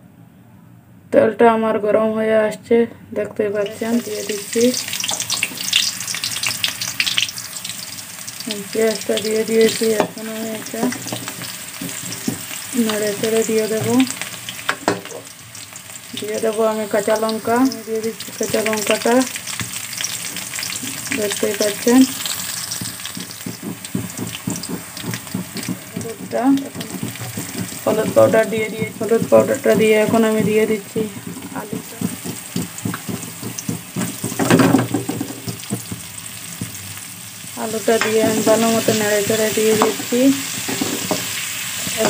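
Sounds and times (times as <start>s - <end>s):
onions sizzling in oil: 3.6s - 42.0s
metal spoon scraping pan: 19.7s - 36.0s.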